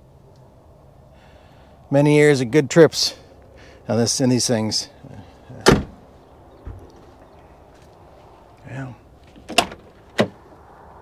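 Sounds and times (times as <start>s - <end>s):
car door latch clicks: 5.6s - 6.0s, 9.4s - 10.4s.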